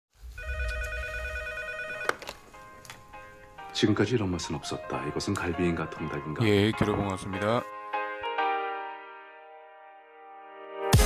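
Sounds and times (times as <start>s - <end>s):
electronic ringing tone warbling: 0.4s - 2.1s.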